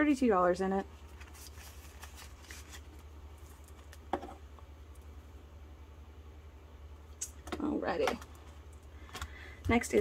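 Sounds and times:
low steady hum: 0.0 - 10.0
plastic binder pocket crinkling: 1.0 - 4.0
paper bills rustling: 1.1 - 3.7.

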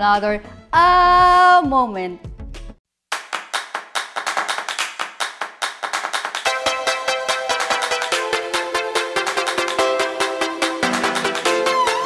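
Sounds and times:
clap-like percussion hits: 3.1 - 12.0.

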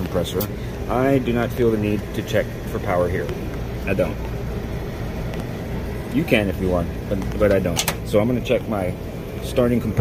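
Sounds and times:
machinery hum: 0.0 - 10.0.

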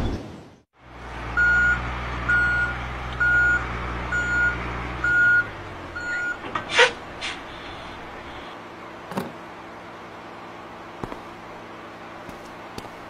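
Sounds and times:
truck engine humming: 0.8 - 13.0
reversing alarm beeps: 1.4 - 6.4.

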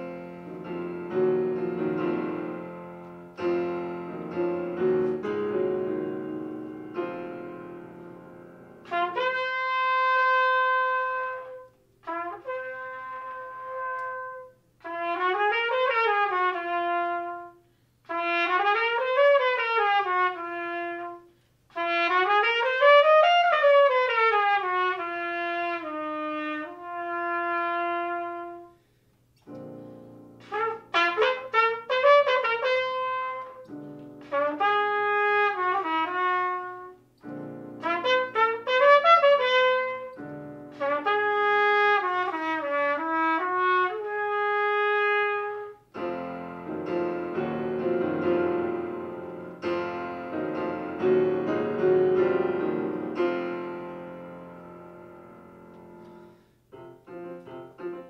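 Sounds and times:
digital piano: 0.0 - 58.0
solo trumpet playing: 0.0 - 58.0.

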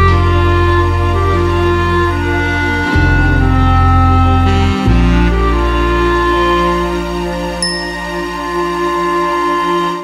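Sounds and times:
high-pitched ding: 7.6 - 8.9
held instrumental chord: 7.6 - 9.2.

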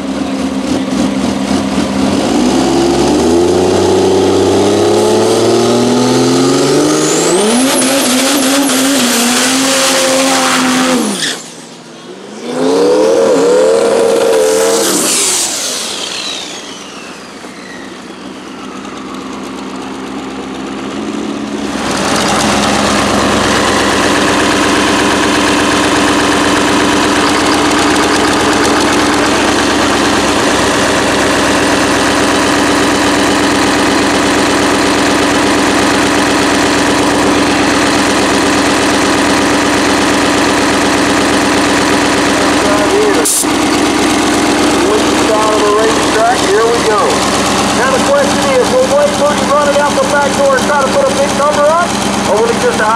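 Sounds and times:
diesel engine idling: 0.0 - 12.4, 13.7 - 52.9
high whine falling in pitch: 12.4 - 51.7.

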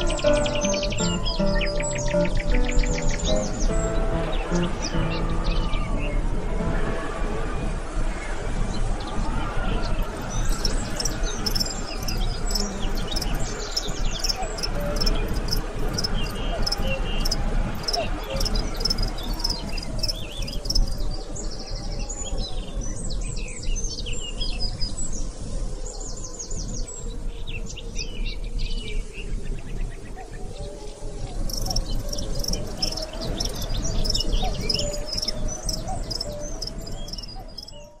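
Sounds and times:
small birds chirping: 0.0 - 6.3, 8.7 - 24.9, 31.3 - 38.0
insects calling: 0.0 - 6.8, 9.2 - 21.4, 31.0 - 37.9.

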